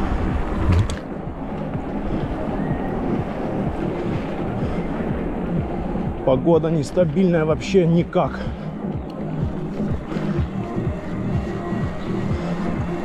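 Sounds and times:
faint music: 0.0 - 13.0
low wind buffeting: 0.0 - 13.0
wind rush on microphone: 0.0 - 13.0.

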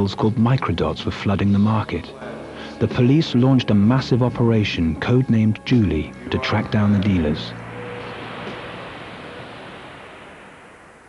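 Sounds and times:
soft rushing whoosh: 6.2 - 11.0.

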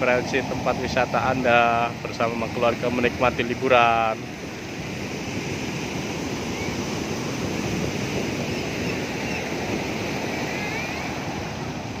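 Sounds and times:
waves breaking on beach: 0.0 - 12.0.

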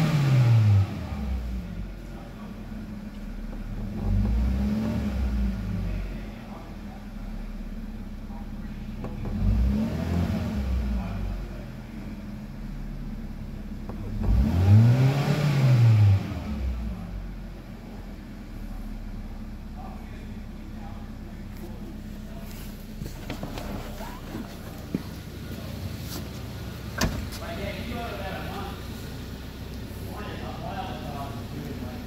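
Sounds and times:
car engine idling and revving: 0.0 - 32.0.

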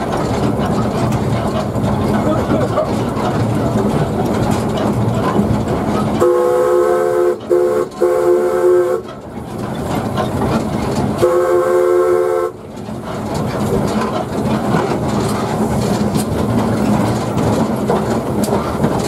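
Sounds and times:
steam locomotive running: 0.0 - 19.0.

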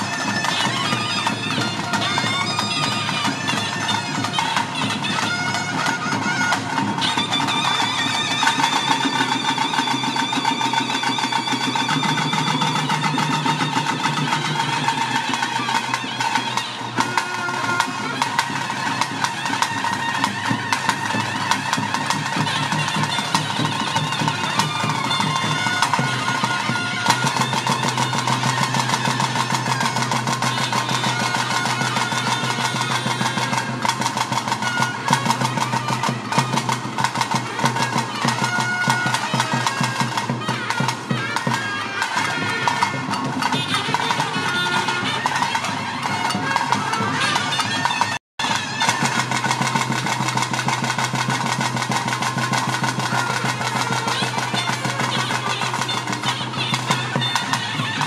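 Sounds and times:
shrill reed wind instrument melody: 0.0 - 58.0.

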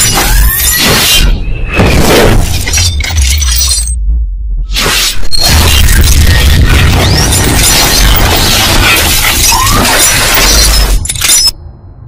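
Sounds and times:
glass shattering crash: 1.8 - 4.0
deep bass: 2.8 - 7.1
crackling debris: 5.4 - 11.5.

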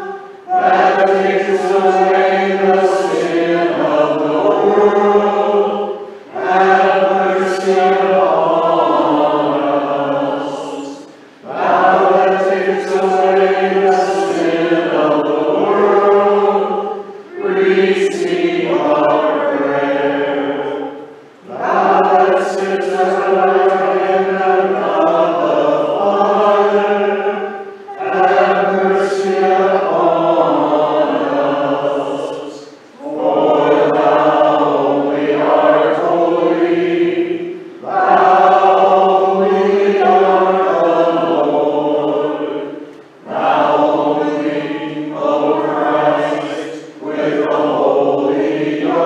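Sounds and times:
congregation singing: 0.0 - 49.0.

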